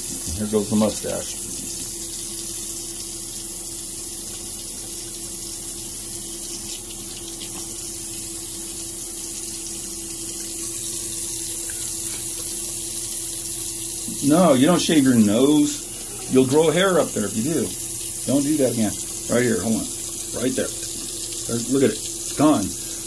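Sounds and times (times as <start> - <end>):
sink tap running: 0.0 - 23.0.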